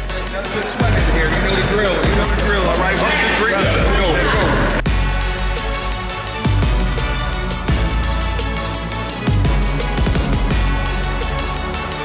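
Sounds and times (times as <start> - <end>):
electronic music with bass beat: 0.0 - 12.0.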